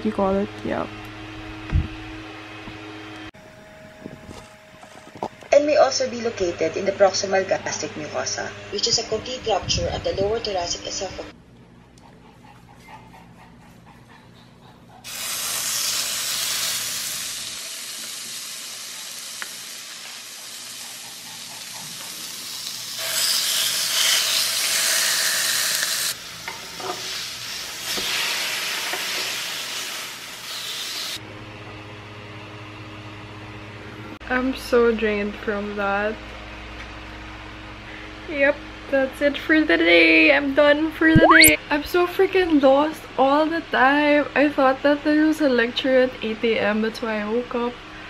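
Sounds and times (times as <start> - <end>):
fish sizzling in a pan: 15.1 - 31.2.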